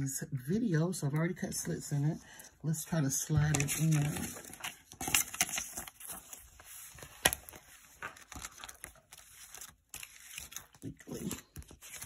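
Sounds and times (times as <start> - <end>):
paper sheets rustling: 3.1 - 12.0.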